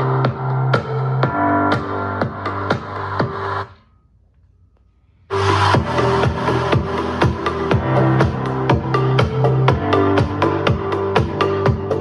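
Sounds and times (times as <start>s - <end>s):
electronic dance music: 0.0s - 3.8s, 5.3s - 12.0s.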